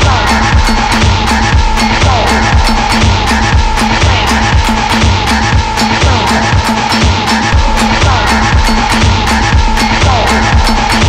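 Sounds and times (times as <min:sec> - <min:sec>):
kick drum beat: 0:00.0 - 0:11.0.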